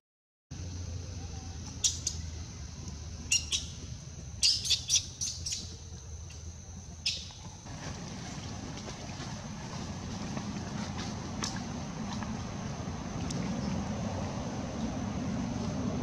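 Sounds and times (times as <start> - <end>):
high-pitched chirping animal calls: 3.3 - 3.8, 4.4 - 5.7.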